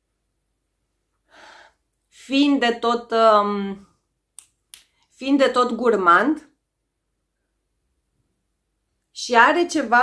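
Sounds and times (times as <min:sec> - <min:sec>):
woman speaking: 0:02.1 - 0:03.9, 0:05.1 - 0:06.6, 0:09.1 - 0:10.0.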